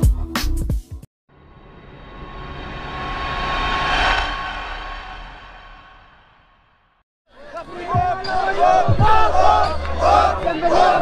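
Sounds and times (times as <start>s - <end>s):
rushing whoosh: 1.6s - 7.0s.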